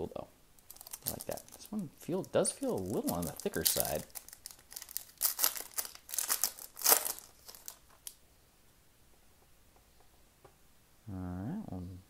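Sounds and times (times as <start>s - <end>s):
plastic wrapper tearing and crinkling: 0.6s - 8.2s.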